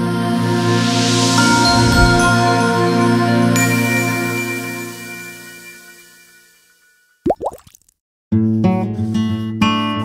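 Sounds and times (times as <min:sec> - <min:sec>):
rising cartoon bloops: 0:07.3 - 0:07.8.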